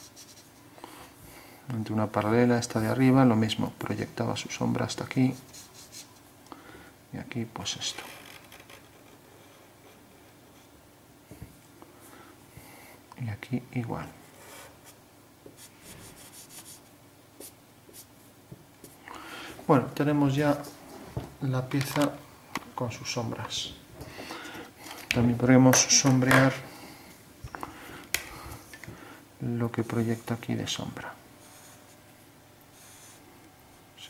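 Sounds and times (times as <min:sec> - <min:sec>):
marker scratching on paper: 0:00.0 - 0:00.6, 0:05.3 - 0:06.1, 0:15.6 - 0:18.1, 0:31.4 - 0:32.0, 0:32.7 - 0:33.2.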